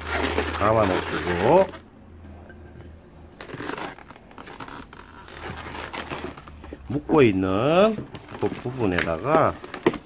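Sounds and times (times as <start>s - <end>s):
balloons rubbing and squeaking: 0.0s - 1.9s, 2.6s - 10.0s.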